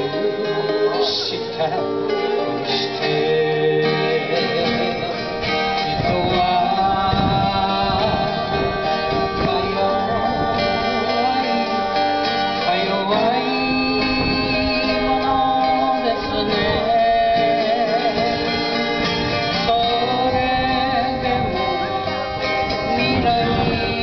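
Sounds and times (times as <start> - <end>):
acoustic guitars playing chords: 0.0 - 24.0
woman singing: 6.0 - 18.5.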